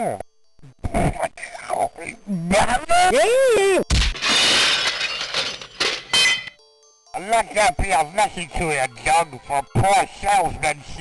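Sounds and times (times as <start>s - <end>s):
window pane shattering: 3.9s - 6.6s
glass tinkling and falling: 4.0s - 6.6s.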